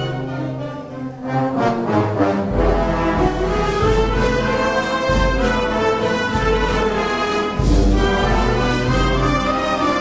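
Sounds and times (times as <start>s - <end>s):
wind band playing a march: 0.0s - 10.0s.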